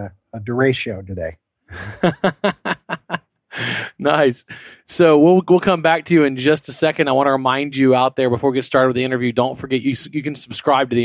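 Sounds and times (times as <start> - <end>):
man laughing: 1.7 - 7.2.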